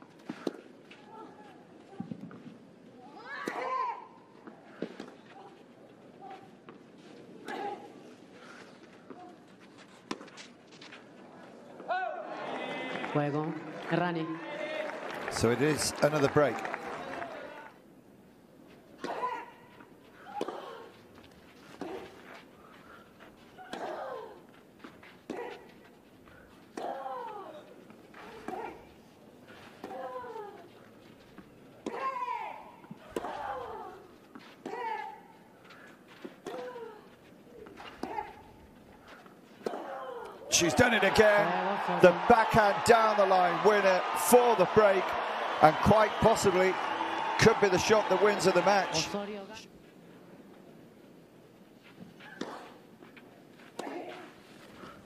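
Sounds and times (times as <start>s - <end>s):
crowd cheering and shouting: 11.9s - 13.3s, 14.2s - 17.7s, 40.5s - 49.2s.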